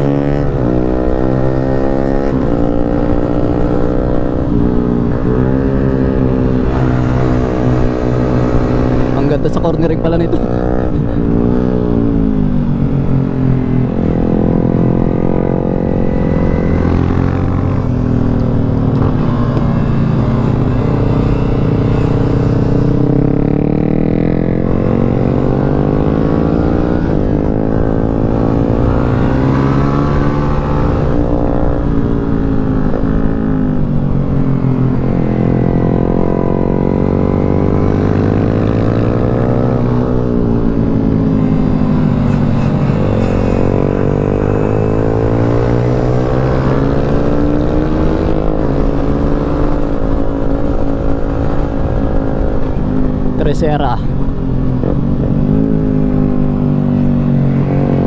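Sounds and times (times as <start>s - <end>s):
motorcycle engine revving: 0.0s - 58.0s
wind rushing over microphone: 0.0s - 58.0s.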